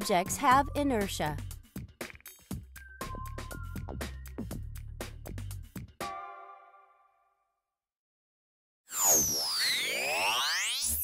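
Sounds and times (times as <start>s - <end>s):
electronic tones sweeping in pitch: 8.9s - 11.0s.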